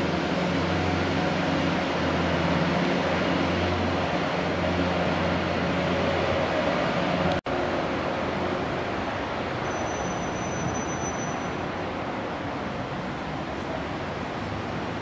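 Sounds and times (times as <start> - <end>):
constant rushing noise: 0.0 - 15.0.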